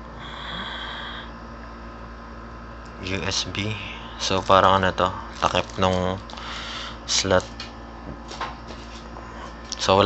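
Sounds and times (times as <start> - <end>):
breathy nasal exhale whistling: 0.2 - 1.3.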